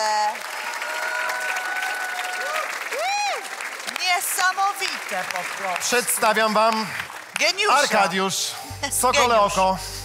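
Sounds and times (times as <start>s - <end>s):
audience applauding: 0.0s - 8.4s.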